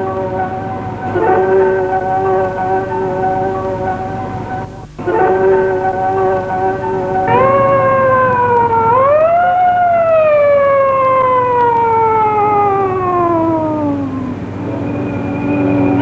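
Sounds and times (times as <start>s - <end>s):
background music: 0.0s - 16.0s
siren wailing: 5.2s - 16.0s.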